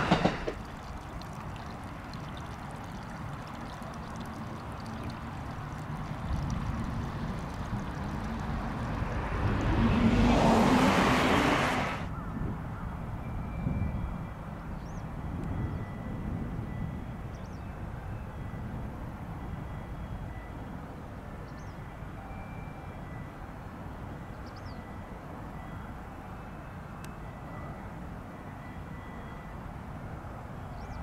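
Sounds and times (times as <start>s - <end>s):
low outdoor rumble: 0.0s - 12.1s
train passing: 0.0s - 31.0s.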